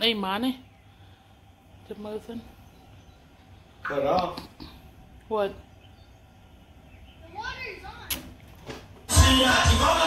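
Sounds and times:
sharp clicks: 0:08.0 - 0:08.5.

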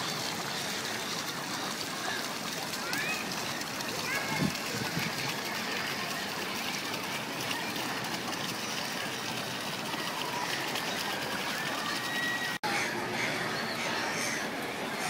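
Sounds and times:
faint voices: 0:00.0 - 0:15.0
fountain splashing into basin: 0:00.0 - 0:15.0.

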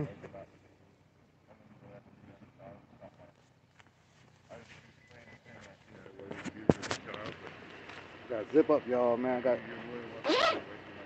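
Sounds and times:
jacket zipper rasping: 0:10.2 - 0:10.6.

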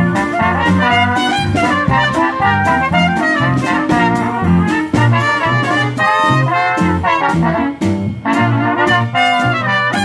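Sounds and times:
drum kit beat: 0:00.0 - 0:10.0
trombone: 0:00.0 - 0:10.0
trumpet: 0:00.0 - 0:10.0.

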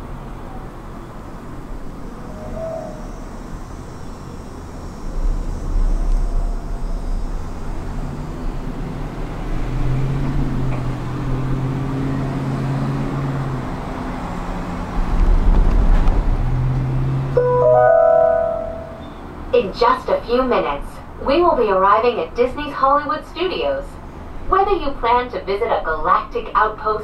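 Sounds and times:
gondola cabin ride rumble: 0:00.0 - 0:12.3, 0:18.8 - 0:27.0
bell-like chime over speaker: 0:17.4 - 0:19.2.

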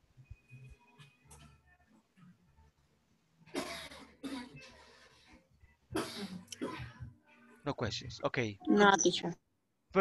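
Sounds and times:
person coughing: 0:03.6 - 0:04.7, 0:06.0 - 0:07.0.

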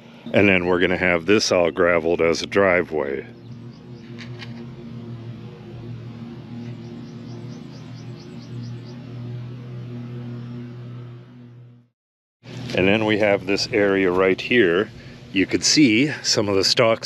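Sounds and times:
music with low sustained notes: 0:00.0 - 0:11.9, 0:12.5 - 0:17.0.

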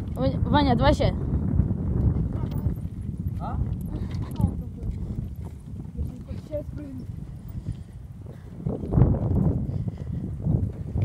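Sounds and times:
bicycles rattling on dirt road: 0:00.0 - 0:11.0
wind buffeting microphone: 0:00.0 - 0:11.0.

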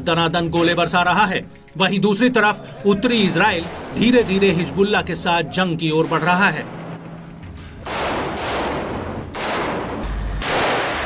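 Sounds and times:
gunfire bursts with echo: 0:03.6 - 0:05.0, 0:07.8 - 0:11.0.

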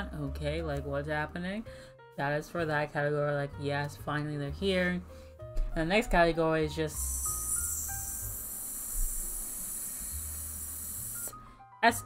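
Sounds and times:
long bright hiss: 0:07.0 - 0:11.4.

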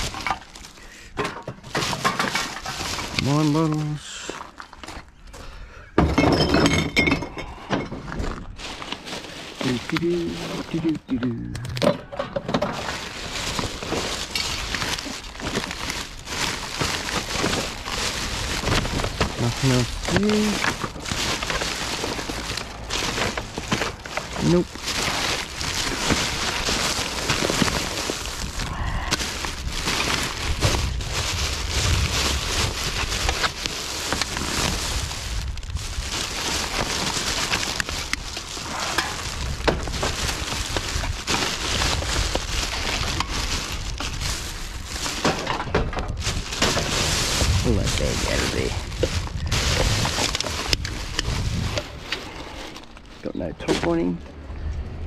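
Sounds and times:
small crackles and knocks: 0:00.0 - 0:54.0
plastic bags rustling and crinkling: 0:00.0 - 0:54.4.

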